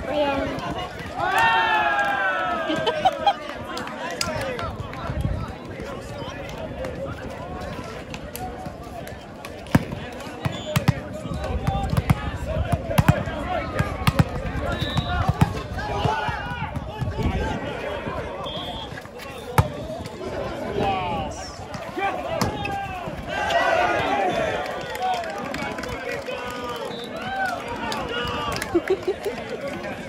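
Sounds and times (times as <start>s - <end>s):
chatter and calls of people: 0.0s - 30.0s
volleyball slaps and bounces: 9.4s - 17.4s, 19.5s - 20.1s.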